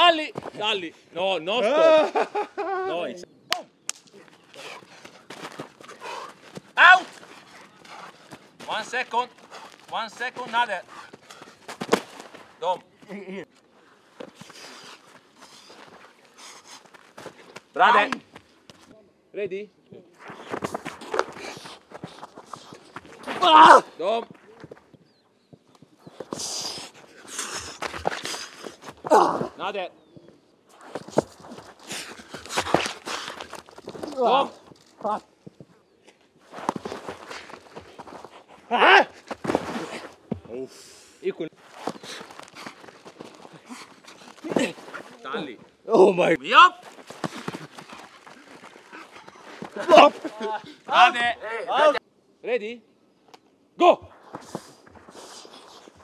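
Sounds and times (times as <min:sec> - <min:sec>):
footsteps running on grass: 0:04.6 - 0:12.6, 0:36.4 - 0:38.6, 0:41.6 - 0:45.2, 0:46.8 - 0:50.6.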